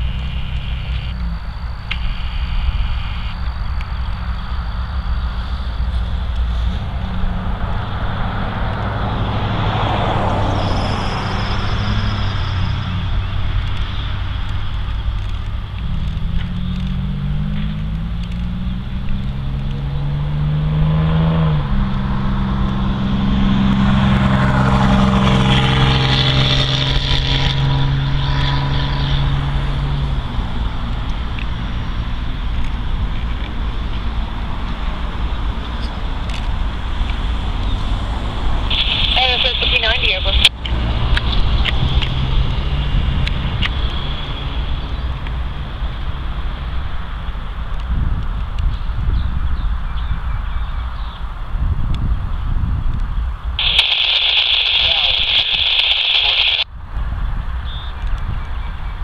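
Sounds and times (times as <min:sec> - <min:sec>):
low rumble: 0:00.0 - 0:20.2, 0:21.0 - 0:49.4
vehicle engine accelerating: 0:00.0 - 0:58.9.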